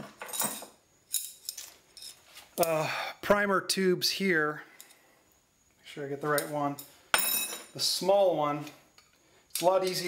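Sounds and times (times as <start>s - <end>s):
metal parts clinking and rattling: 0.2s - 2.7s.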